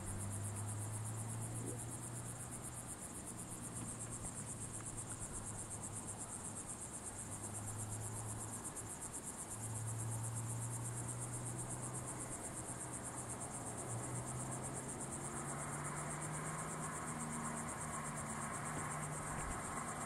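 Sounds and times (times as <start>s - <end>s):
bush-crickets trilling: 0.0s - 20.0s.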